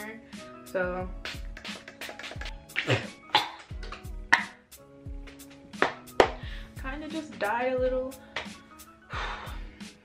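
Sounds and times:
music with steady beat: 0.0 - 10.0.

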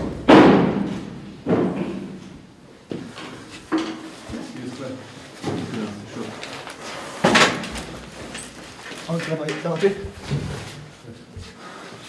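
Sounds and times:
loud bangs echoing off concrete: 0.0 - 2.2.

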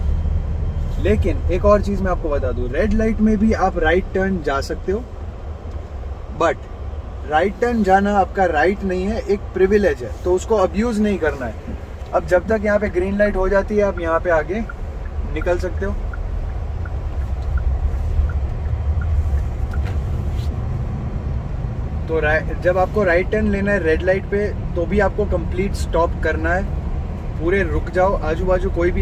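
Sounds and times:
car cabin low rumble: 0.0 - 29.0
traffic passing: 0.0 - 29.0
faint regular ticking: 11.6 - 20.2.

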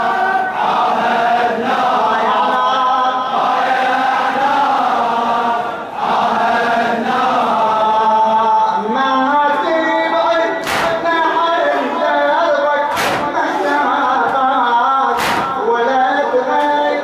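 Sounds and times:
crowd of men chanting: 0.0 - 17.0.

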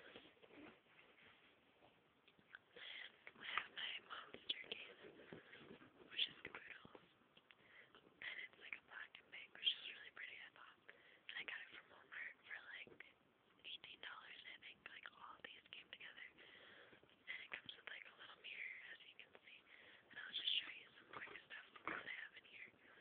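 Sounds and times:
person whispering: 2.6 - 5.4, 6.0 - 7.0, 8.2 - 16.4, 17.2 - 23.0.

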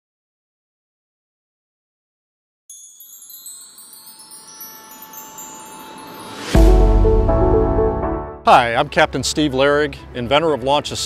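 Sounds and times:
wind chimes ringing: 2.7 - 7.2
music: 2.7 - 11.0
rising swell of noise: 4.8 - 8.4.

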